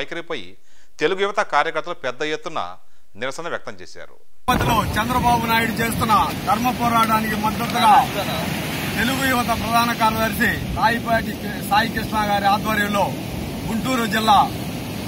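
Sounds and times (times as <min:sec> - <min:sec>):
man speaking loudly: 0:04.5 - 0:14.6.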